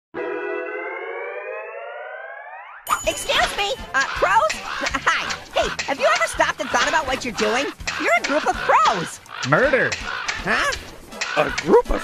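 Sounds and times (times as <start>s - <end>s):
siren-like rising tone: 0.2s - 3.0s.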